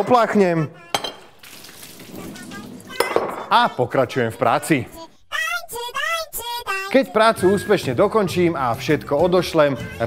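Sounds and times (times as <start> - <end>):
high-pitched child-like voice singing: 0.5 - 1.1, 2.0 - 8.4, 9.2 - 10.0.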